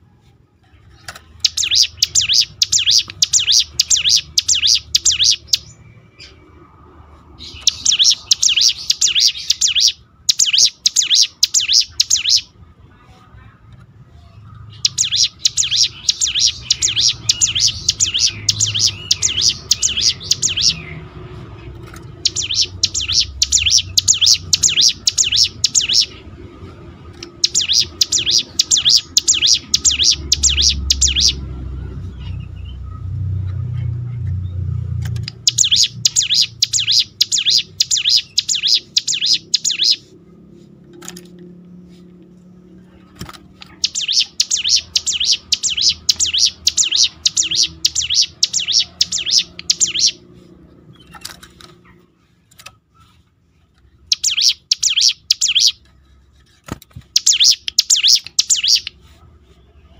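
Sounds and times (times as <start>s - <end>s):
bird singing fast high notes: 1.4s - 5.8s, 7.4s - 12.5s, 14.7s - 21.0s, 22.1s - 26.3s, 27.3s - 31.4s, 35.3s - 40.0s, 43.7s - 50.2s, 57.1s - 59.0s.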